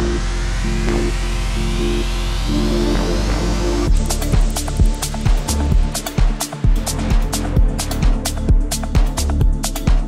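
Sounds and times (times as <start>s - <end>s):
rising synth sweep: 0.0s - 7.4s
held synth chords: 0.0s - 9.7s
deep bass: 0.0s - 10.0s.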